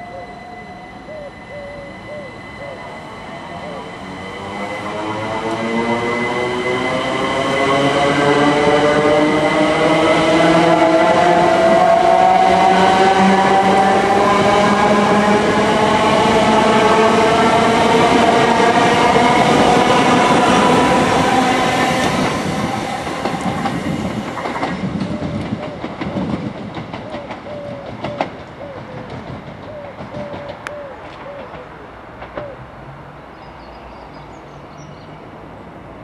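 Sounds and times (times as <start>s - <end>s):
train traction motors whining: 0.0s - 26.0s
rail noise with clicks: 0.0s - 36.0s.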